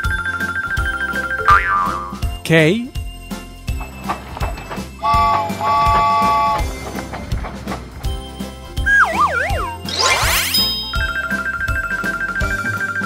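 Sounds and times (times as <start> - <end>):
children's background music: 0.0 - 13.0
cartoon train whistle: 5.0 - 6.7
wavering falling whistle effect: 8.8 - 12.9
fast rising sweep: 8.9 - 10.9.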